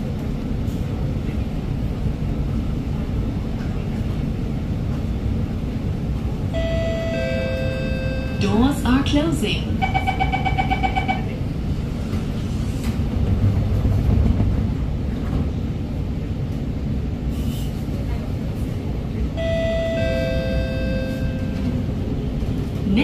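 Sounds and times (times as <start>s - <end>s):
train interior rumble: 0.0s - 23.0s.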